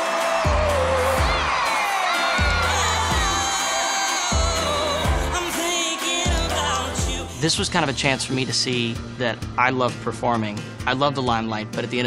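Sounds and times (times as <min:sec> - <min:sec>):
kick drum beat: 0:00.0 - 0:01.7, 0:02.3 - 0:03.6
band playing pop song: 0:00.0 - 0:08.9.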